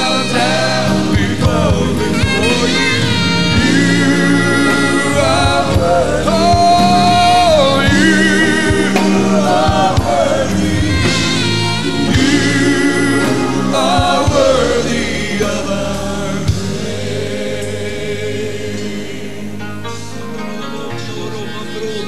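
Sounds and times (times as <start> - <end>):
gospel choir singing: 0.0 - 22.0
live band accompaniment: 0.0 - 22.0.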